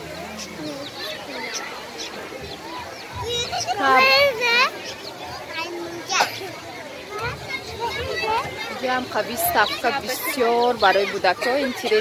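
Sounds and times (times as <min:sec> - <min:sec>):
children's voices and chatter: 0:00.0 - 0:12.0.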